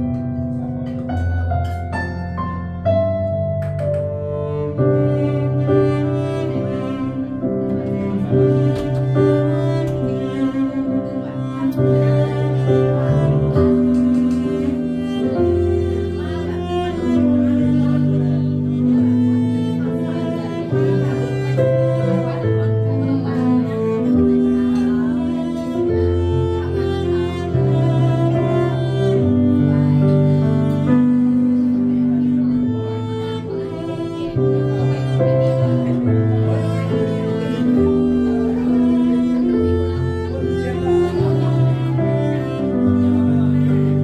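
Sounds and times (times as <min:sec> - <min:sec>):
bowed cello: 0:00.0 - 0:44.0
piano chords: 0:00.0 - 0:44.0.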